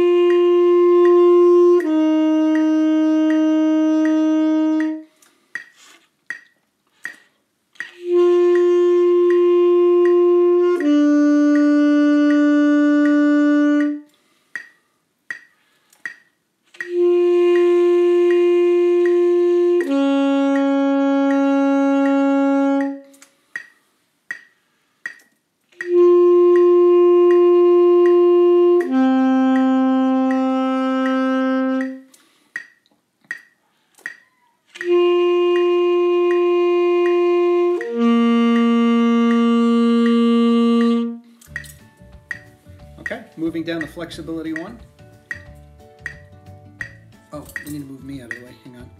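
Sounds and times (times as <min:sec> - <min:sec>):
bassoon playing long tones: 0:00.0 - 0:05.1, 0:07.9 - 0:14.1, 0:16.8 - 0:23.2, 0:25.8 - 0:32.1, 0:34.8 - 0:41.4
metronome clicking: 0:00.0 - 0:48.9.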